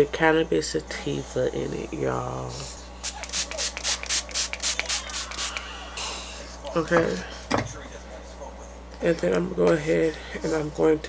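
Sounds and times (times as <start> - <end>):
spray bottle hissing sprays: 3.0 - 5.7.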